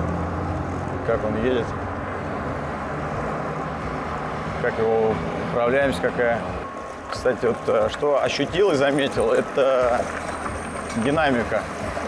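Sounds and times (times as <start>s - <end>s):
road noise: 0.0s - 12.0s
street traffic: 0.0s - 12.0s.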